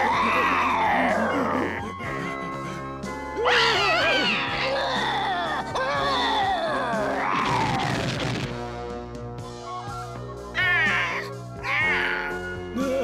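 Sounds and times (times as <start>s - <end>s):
shrill cry: 0.0s - 1.8s, 3.4s - 8.0s, 10.6s - 12.5s
cartoon background music: 0.0s - 13.0s.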